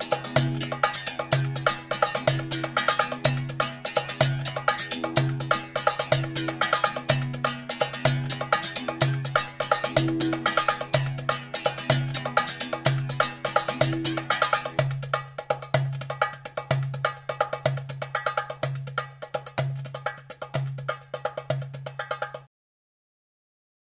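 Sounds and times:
music with busy percussion: 0.0 - 22.5.

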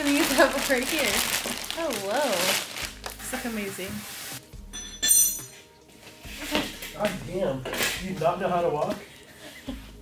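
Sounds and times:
plastic wrapping rustling: 0.0 - 4.5
bright chime-like clink: 4.7 - 5.6.

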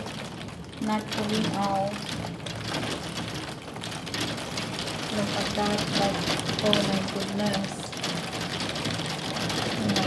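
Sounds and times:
heavy rain: 0.0 - 10.0.

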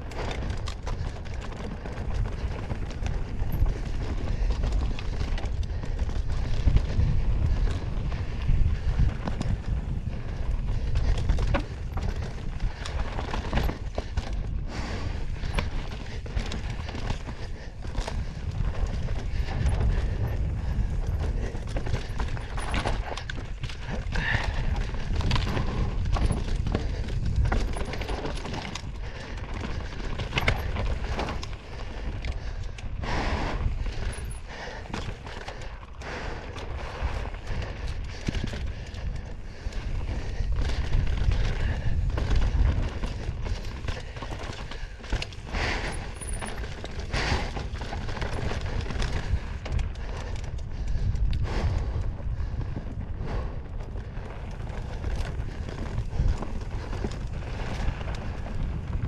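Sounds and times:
bike clattering over rocks: 0.0 - 33.0, 36.6 - 51.2
rumble of tyres and wind: 0.0 - 59.0.

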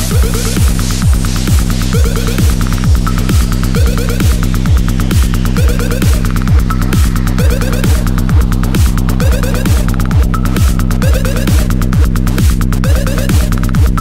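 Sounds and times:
fast high percussion ticking: 0.0 - 14.0
heavy kick drum: 0.0 - 14.0
throbbing low bass drone: 0.0 - 14.0.

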